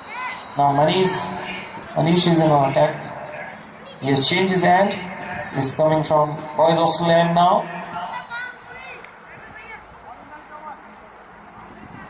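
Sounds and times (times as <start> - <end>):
faint distant voices: 0.0 - 12.0
open-air background hiss: 0.0 - 12.0.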